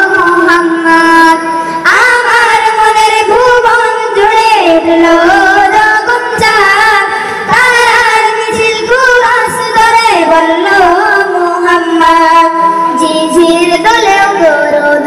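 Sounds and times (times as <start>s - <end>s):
boys singing through loudspeakers: 0.0s - 15.0s.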